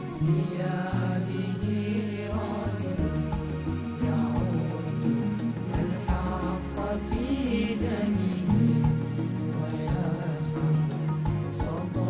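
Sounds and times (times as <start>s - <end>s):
men singing devotional song: 0.0s - 12.0s.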